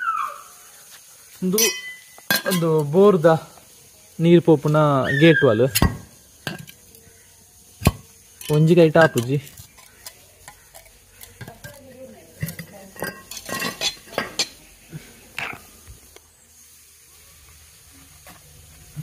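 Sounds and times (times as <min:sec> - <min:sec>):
machete scraping and clicking on metal: 0:12.4 - 0:14.6.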